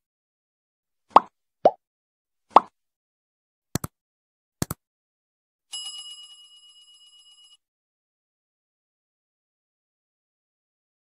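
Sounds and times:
bell ring: 5.7s - 7.6s.

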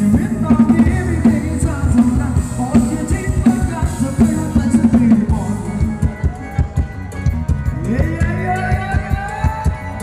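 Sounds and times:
band playing dance music: 0.0s - 10.0s.

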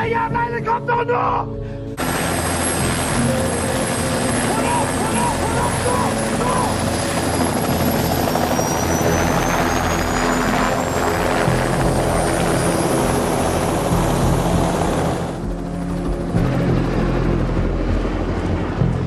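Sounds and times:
high turbine whine: 1.8s - 19.0s
helicopter rotor and engine: 1.9s - 19.0s.

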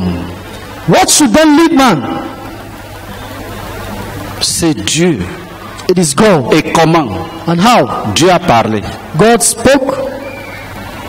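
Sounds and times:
echoing man's voice: 0.0s - 2.6s, 4.4s - 10.2s.

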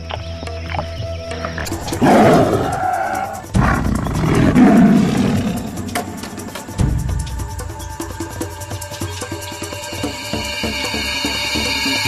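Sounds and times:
background music: 0.0s - 12.0s
tiger roaring: 1.6s - 6.7s.

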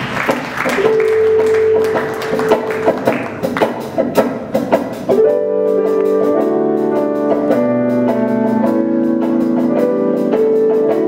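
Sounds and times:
group hand clapping: 0.0s - 4.0s.

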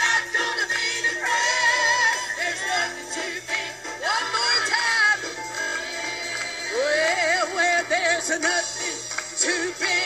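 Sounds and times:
gospel choir singing: 0.0s - 10.0s
hand clapping: 8.4s - 9.7s.

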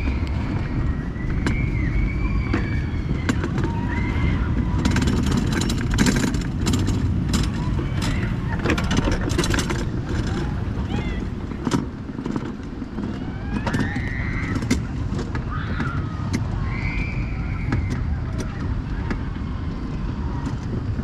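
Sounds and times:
high sliding squeals: 0.0s - 4.9s
bobsled wheels rumbling on metal: 0.0s - 21.0s
rattling clicks and knocks: 2.5s - 16.5s.

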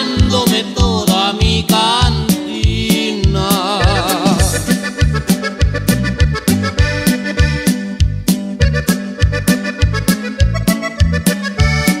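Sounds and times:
steady drum beat: 0.0s - 7.8s
accordion melody: 0.0s - 12.0s
bass line: 0.0s - 12.0s.

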